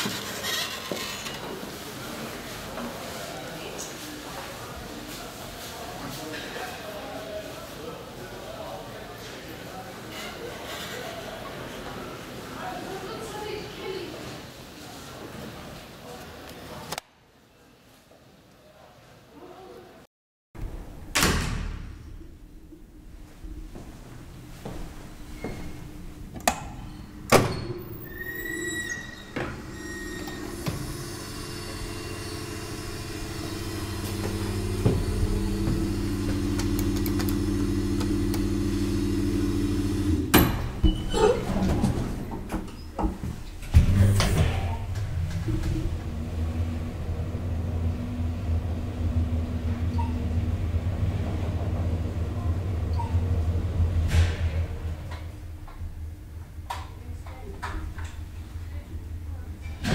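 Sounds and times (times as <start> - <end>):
door shutting with a bang: 20.6 - 22.2, 26.4 - 27.9, 40.2 - 42.1, 54.0 - 55.1
low steady hum: 21.9 - 40.4, 43.5 - 59.9
elevator car rumbling: 22.0 - 59.9.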